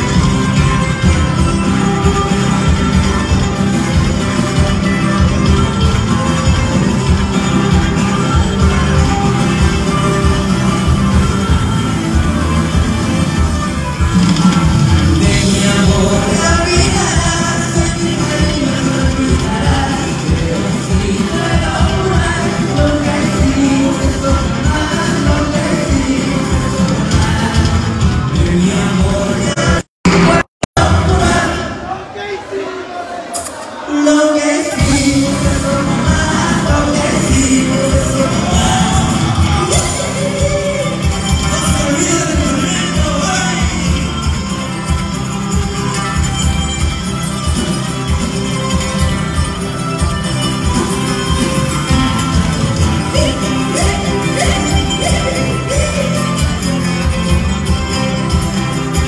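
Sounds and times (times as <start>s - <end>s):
acoustic guitars: 0.0s - 31.8s, 34.6s - 59.0s
live band over loudspeakers: 0.0s - 59.0s
person singing: 14.2s - 31.9s, 33.8s - 45.0s, 50.5s - 59.0s.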